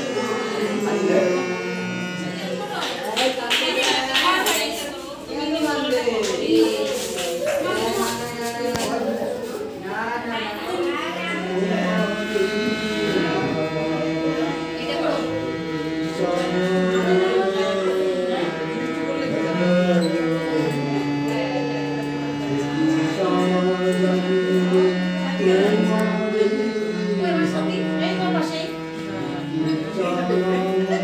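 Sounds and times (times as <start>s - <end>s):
harmonium playing held notes: 0.0s - 31.0s
voices singing devotional song: 0.0s - 31.0s.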